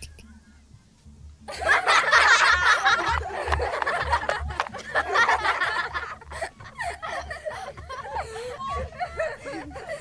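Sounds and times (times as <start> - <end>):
high-pitched laughing: 1.5 - 10.0.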